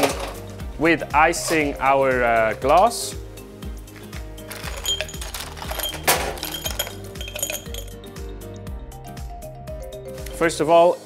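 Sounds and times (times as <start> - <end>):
ice cubes clinking into glass: 4.5 - 8.0.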